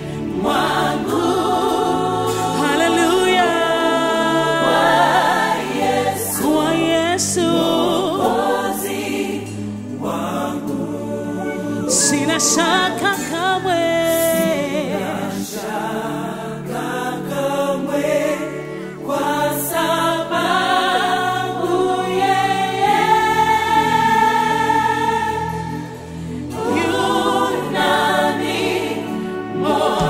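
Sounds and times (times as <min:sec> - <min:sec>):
electronic keyboard: 0:00.0 - 0:30.0
gospel choir singing in harmony: 0:00.0 - 0:30.0.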